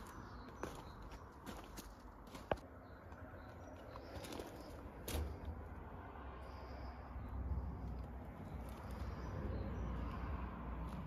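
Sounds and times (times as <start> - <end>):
footsteps on gravel: 0.0 - 5.6.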